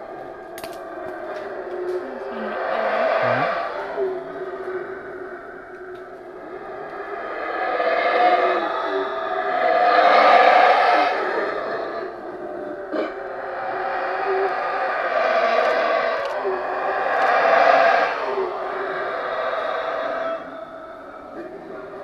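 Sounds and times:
howler monkeys roaring: 0:00.0 - 0:22.0.

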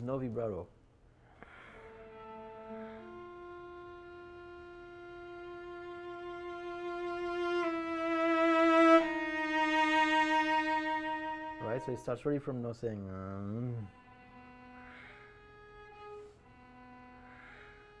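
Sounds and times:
cello bowed notes: 0:01.4 - 0:18.0.

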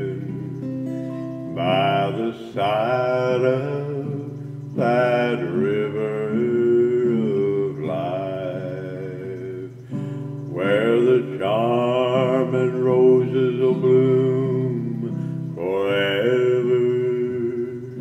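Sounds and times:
guitar accompaniment: 0:00.0 - 0:18.0
man singing with vibrato: 0:00.0 - 0:18.0.

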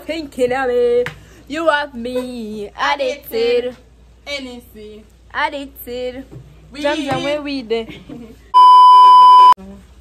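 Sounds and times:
censor bleep: 0:08.6 - 0:09.6.

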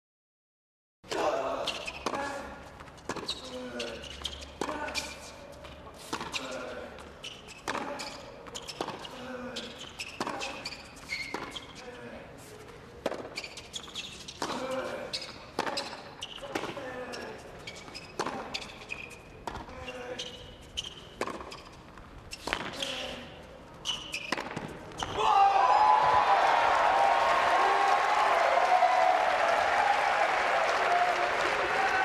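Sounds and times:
shoes squeaking on court: 0:01.5 - 0:25.3
tennis ball bouncing: 0:02.0 - 0:03.4, 0:06.1 - 0:06.4, 0:07.6 - 0:09.1, 0:11.3 - 0:11.6, 0:13.0 - 0:13.5, 0:15.2 - 0:16.8, 0:17.8 - 0:18.6, 0:19.4 - 0:19.7, 0:21.1 - 0:22.8, 0:24.1 - 0:25.1
racquet hitting tennis ball: 0:07.6 - 0:08.0, 0:13.0 - 0:13.4, 0:15.5 - 0:16.7, 0:21.2 - 0:21.6, 0:24.2 - 0:24.7
ball bouncing on hard court: 0:07.6 - 0:09.1, 0:13.0 - 0:16.8, 0:21.2 - 0:21.7, 0:24.1 - 0:25.2.

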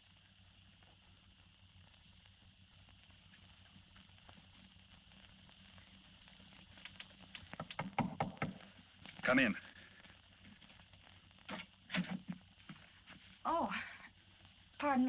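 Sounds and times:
faint steady hiss: 0:00.0 - 0:15.0
knocking on a door: 0:07.6 - 0:08.6.

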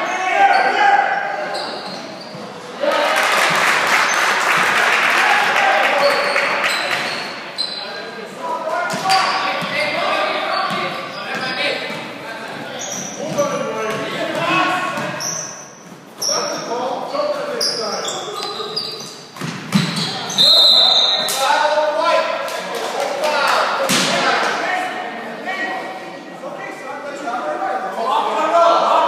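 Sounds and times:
sneaker squeaks: 0:00.0 - 0:02.7, 0:06.0 - 0:08.0, 0:08.9 - 0:21.4.

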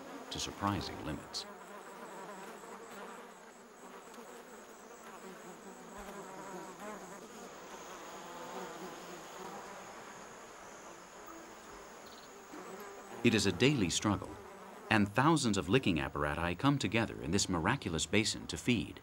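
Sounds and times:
bees and flies buzzing: 0:00.0 - 0:19.0.

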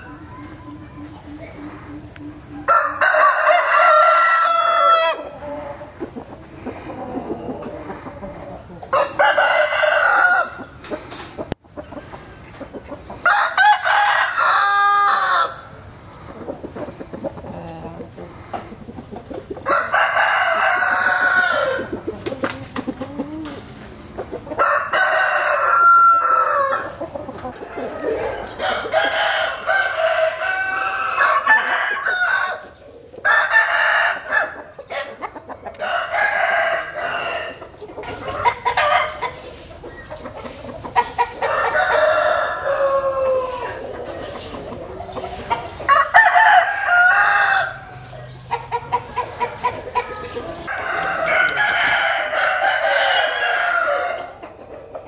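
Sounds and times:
roosters crowing: 0:00.0 - 0:55.0.

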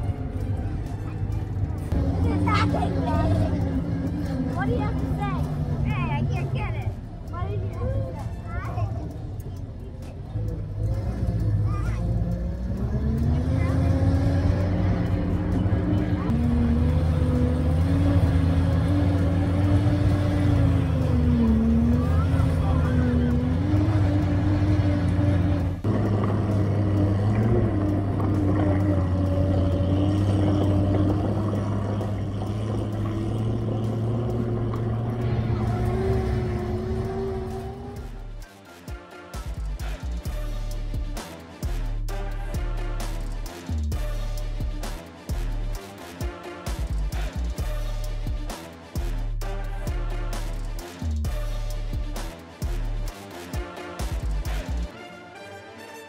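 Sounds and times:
tracked vehicle engine drone: 0:00.0 - 0:55.0.

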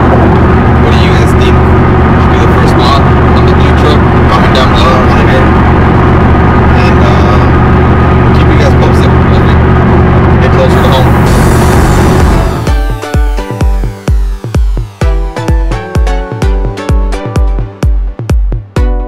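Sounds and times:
road and engine noise in cab: 0:00.0 - 0:15.7
man talking: 0:00.8 - 0:05.6, 0:06.8 - 0:07.6, 0:08.3 - 0:09.6, 0:10.4 - 0:11.3.

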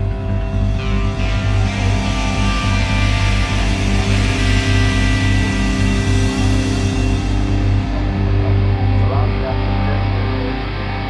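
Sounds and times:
heavy rock music: 0:00.0 - 0:11.0.

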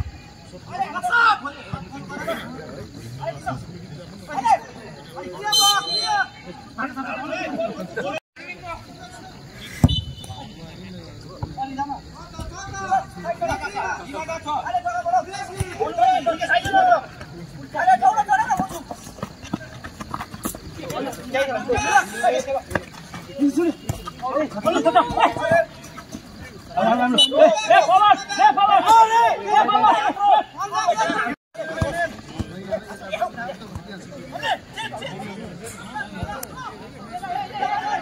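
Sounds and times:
background chatter: 0:00.0 - 0:38.0
people calling and shouting: 0:00.0 - 0:38.0.

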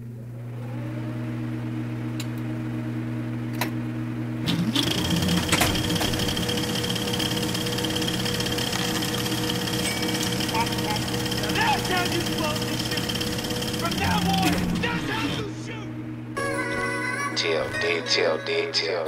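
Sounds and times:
low electric hum: 0:00.0 - 0:19.0
high steady whine: 0:01.8 - 0:19.0.

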